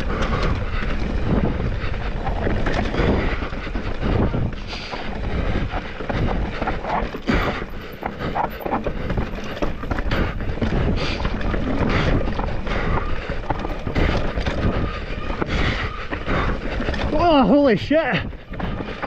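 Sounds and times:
bike knocking and rattling: 0.0s - 19.0s
bike tyre noise on dirt trail: 0.0s - 19.0s
wind on microphone: 0.0s - 19.0s.

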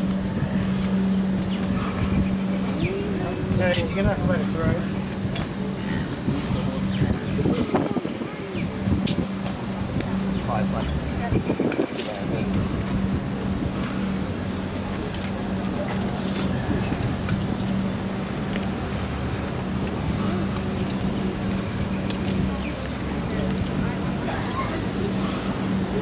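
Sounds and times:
diesel locomotive engine humming: 0.0s - 26.0s.

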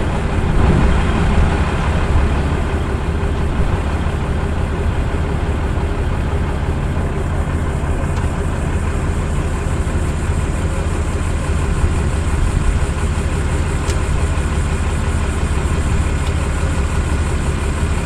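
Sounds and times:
engine idling: 0.0s - 18.0s.

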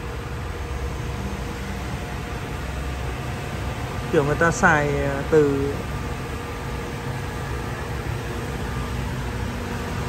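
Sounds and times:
machinery hum with faint whine: 0.0s - 10.0s.

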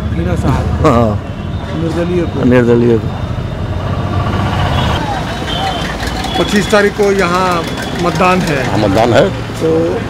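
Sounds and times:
vehicle engine running: 3.7s - 10.0s.

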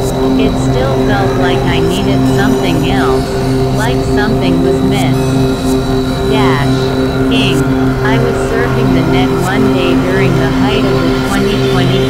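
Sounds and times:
gliding synth pitch sweeps: 0.0s - 12.0s
low synthesizer drone: 0.0s - 12.0s.

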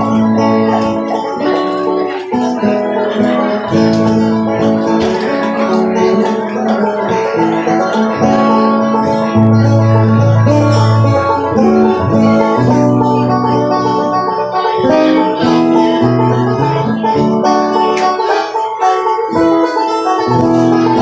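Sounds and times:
acoustic guitar chords: 0.0s - 21.0s
picked banjo notes: 0.0s - 21.0s.

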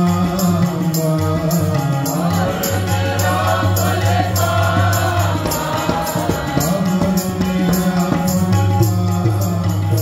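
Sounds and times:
harmonium held notes: 0.0s - 10.0s
tabla strokes: 0.0s - 10.0s
group singing a hymn: 2.1s - 8.5s.

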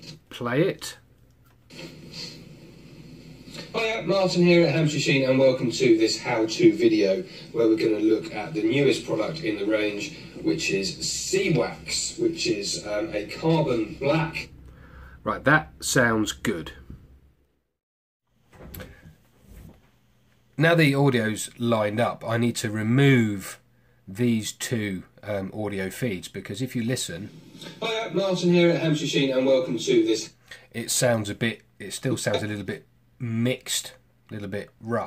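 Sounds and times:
faint background noise with low hum: 18.4s - 35.0s.

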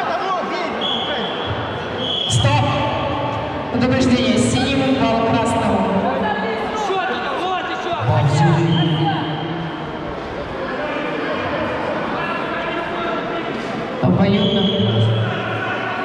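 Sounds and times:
voices shouting over one another: 14.8s - 16.0s.

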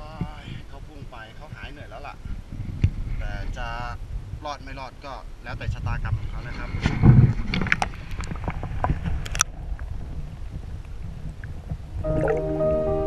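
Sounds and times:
water splashing: 11.2s - 13.0s
background music with held notes: 12.0s - 13.0s.

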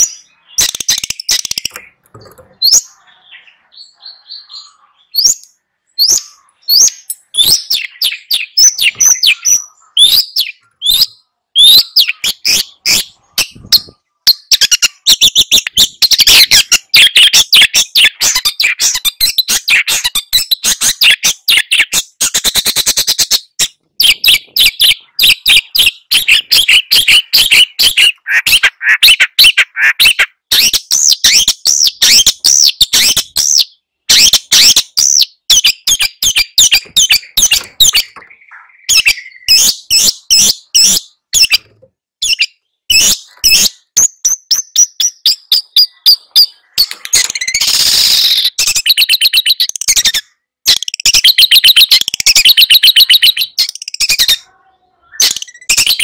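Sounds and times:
bird singing chattering trills: 0.0s - 56.0s.

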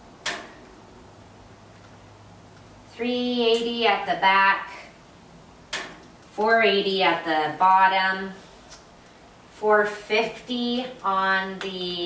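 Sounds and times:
sharp click: 0.2s - 0.6s, 5.7s - 6.1s.

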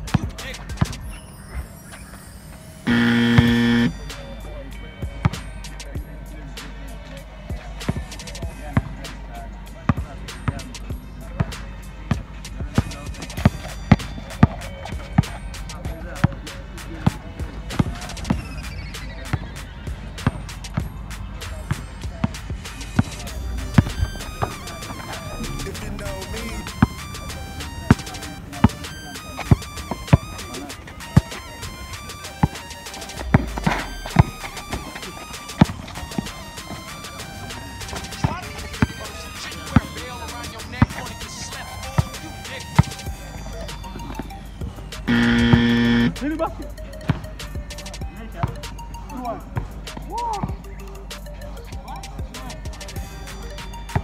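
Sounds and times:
background music: 0.0s - 54.0s
loud buzzing tone: 2.9s - 3.9s, 45.1s - 46.2s
basketball bouncing on concrete: 11.4s - 16.4s, 17.0s - 18.5s, 27.8s - 31.5s, 32.3s - 32.6s, 33.2s - 36.8s, 39.7s - 41.1s, 41.9s - 42.2s, 42.8s - 43.2s, 47.0s - 47.3s, 48.4s - 48.7s.

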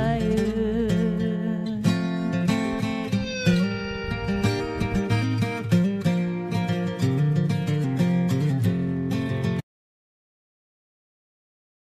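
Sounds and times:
country backing track: 0.0s - 9.6s
strummed acoustic guitar: 0.0s - 9.6s.

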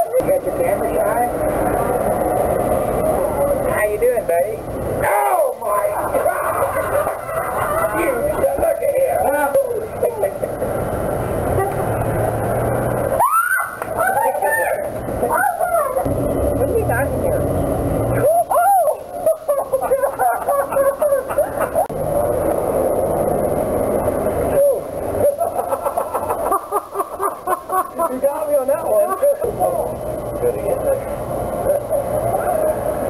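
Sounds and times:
people exclaiming: 5.0s - 8.4s, 13.1s - 16.1s, 18.2s - 21.9s
people laughing: 5.8s - 8.7s, 18.2s - 21.9s, 25.2s - 29.5s.

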